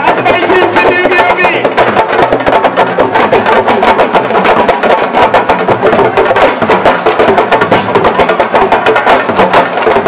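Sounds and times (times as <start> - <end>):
big crowd noise: 0.0 - 10.0
fast sabar drumming: 0.0 - 10.0.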